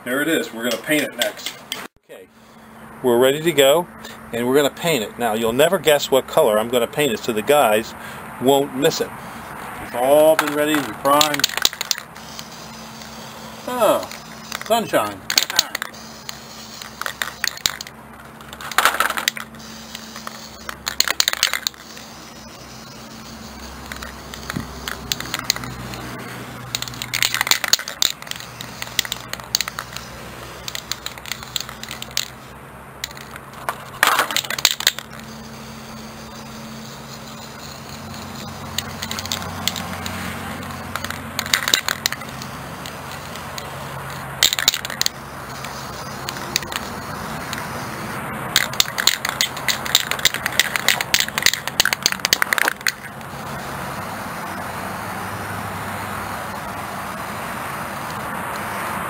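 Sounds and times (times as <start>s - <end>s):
spray can rattling clicks: 10.4s - 13.2s, 14.1s - 22.0s, 23.8s - 26.0s, 26.7s - 32.4s, 33.0s - 35.2s, 36.8s - 40.2s, 40.8s - 47.7s, 48.5s - 53.3s
spray paint can hissing: 10.6s - 54.0s.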